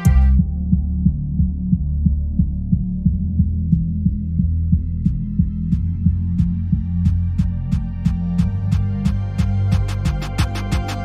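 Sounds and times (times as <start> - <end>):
synth bass beat: 0.0 - 11.0.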